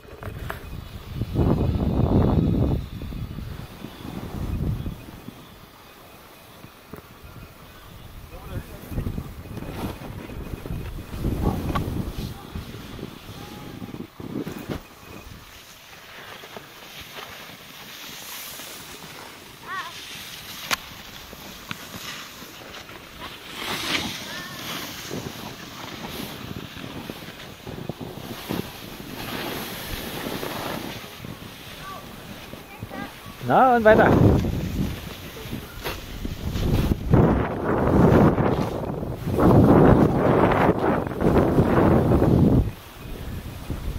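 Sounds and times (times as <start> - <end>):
wind on microphone: 0.0 - 15.7, 17.2 - 43.9
snowboards scraping over snow: 0.0 - 43.9
faint voices: 6.8 - 15.4, 18.8 - 20.3, 29.4 - 37.0.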